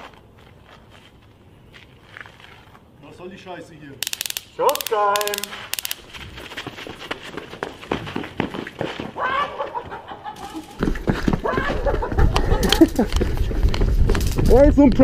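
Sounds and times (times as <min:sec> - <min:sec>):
people shouting and crying: 0:09.2 - 0:09.9, 0:11.3 - 0:12.8.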